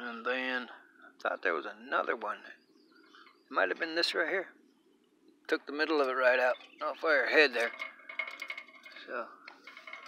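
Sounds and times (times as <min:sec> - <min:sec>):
light metal clicks and clinks: 0:07.5 - 0:10.0.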